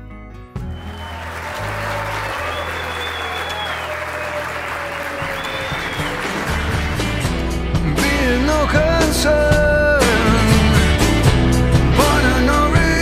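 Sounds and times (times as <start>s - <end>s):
background music with low notes: 0.0s - 13.0s
guests applauding: 0.6s - 7.6s.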